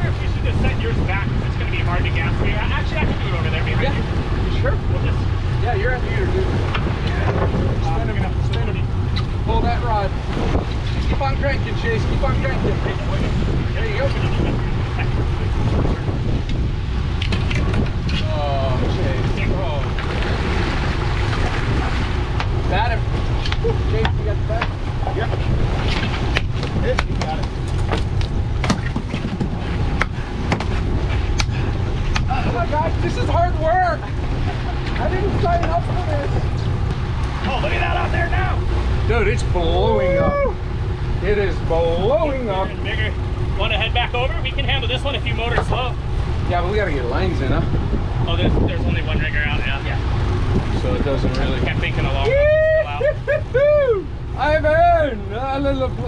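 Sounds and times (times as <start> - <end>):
boat engine low rumble: 0.0 - 56.0.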